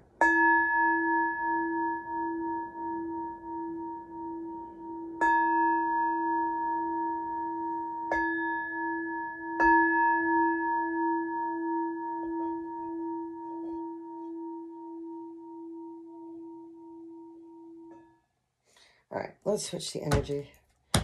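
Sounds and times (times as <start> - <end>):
singing bowl struck and ringing: 0.2 - 18.1.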